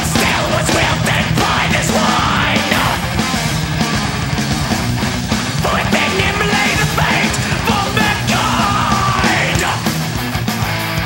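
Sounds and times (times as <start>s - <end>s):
shouted vocals: 0.0s - 3.2s, 5.6s - 10.0s
distorted electric guitars: 0.0s - 11.0s
fast drumming: 0.0s - 11.0s
thrash metal music: 0.0s - 11.0s.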